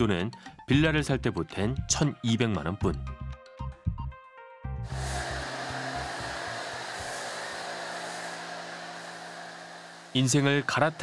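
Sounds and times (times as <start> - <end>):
pressure washer spraying foam: 4.9 - 11.0.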